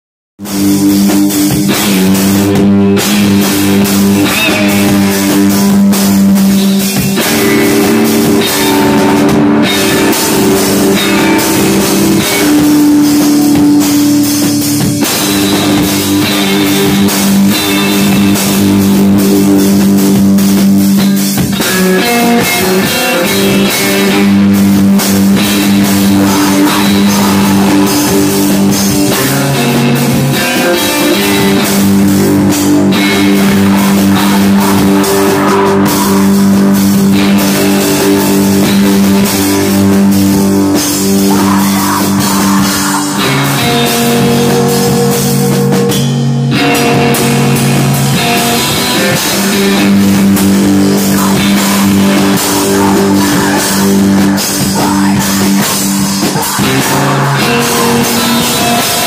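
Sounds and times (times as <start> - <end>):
drum kit with cymbals: 0.4 - 59.0
electric guitar sustained chords: 21.5 - 59.0.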